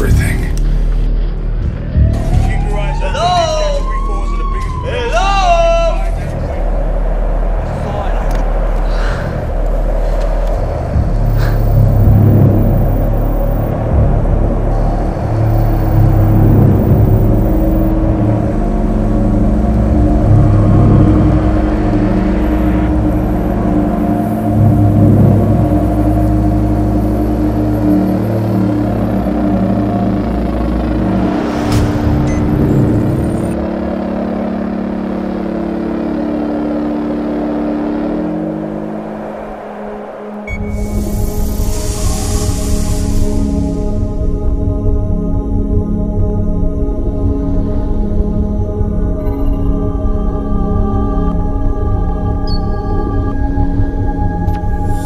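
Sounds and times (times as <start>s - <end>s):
film score with held tones: 0.0s - 55.0s
deep machine rumble: 5.9s - 55.0s
sharp hit: 31.0s - 34.1s.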